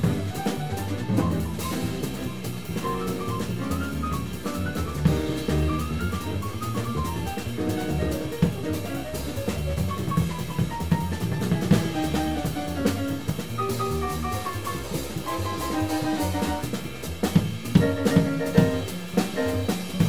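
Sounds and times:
plucked double bass: 0:00.0 - 0:18.9
drum kit: 0:00.0 - 0:20.0.

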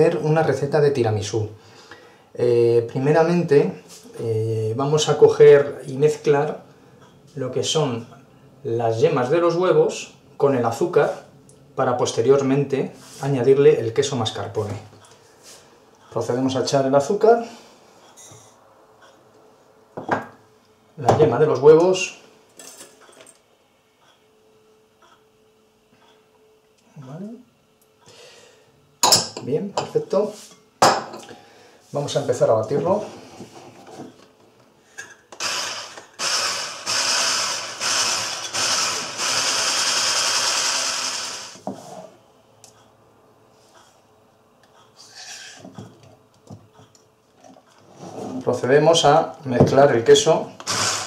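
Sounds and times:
electric whisk beating: 0:35.4 - 0:41.6, 0:50.6 - 0:51.0.

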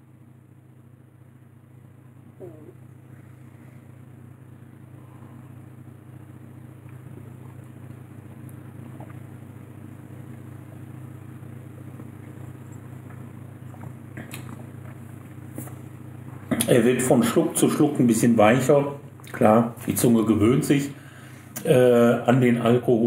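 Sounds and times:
low room hum: 0:00.0 - 0:23.0.

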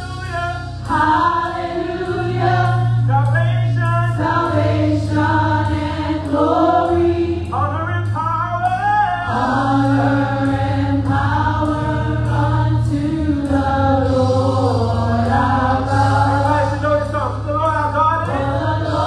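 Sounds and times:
steady low bass note: 0:00.0 - 0:19.0
group singing in harmony: 0:00.8 - 0:03.2, 0:04.1 - 0:07.6, 0:09.2 - 0:16.9, 0:18.2 - 0:19.0.

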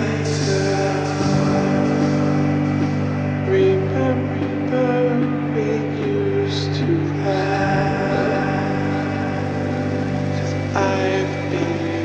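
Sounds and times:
slow droning music: 0:00.0 - 0:12.0.

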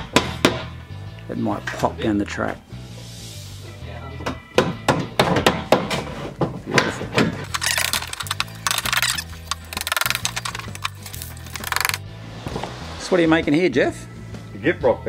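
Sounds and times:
background music with bass line: 0:07.4 - 0:13.1.

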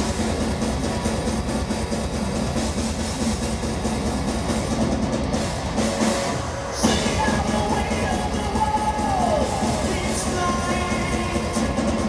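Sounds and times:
distorted electric guitar: 0:00.0 - 0:12.0
drums: 0:00.0 - 0:12.0.

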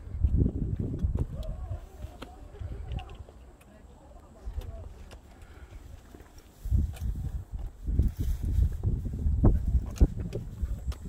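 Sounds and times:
wind buffeting microphone: 0:00.0 - 0:03.4, 0:04.4 - 0:11.0.

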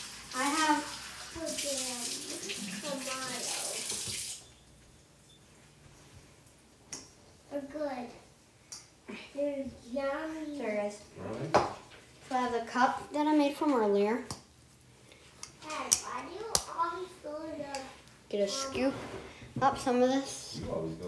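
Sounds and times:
water running from a tap: 0:00.0 - 0:04.5.

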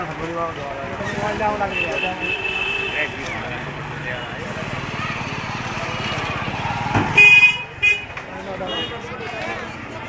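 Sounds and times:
street noise: 0:00.0 - 0:10.0
vehicle horn honking: 0:07.2 - 0:08.1.

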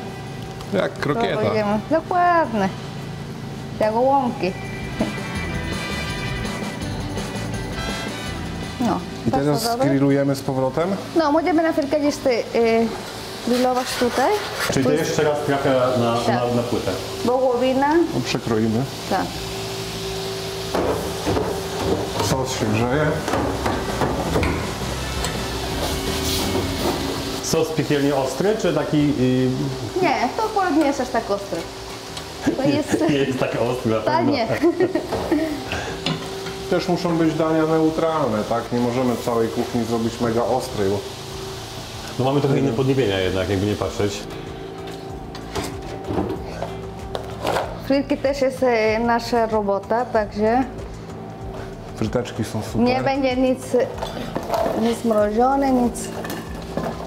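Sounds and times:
steady hum: 0:00.0 - 0:57.0
food sizzling on griddle: 0:00.7 - 0:57.0
background music: 0:04.0 - 0:11.0, 0:39.7 - 0:57.0
metal spatula scraping griddle: 0:13.4 - 0:14.9.

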